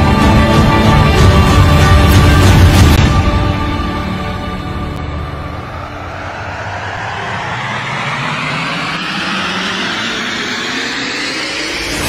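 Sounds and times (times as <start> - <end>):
cinematic whoosh riser: 2.0 - 12.0.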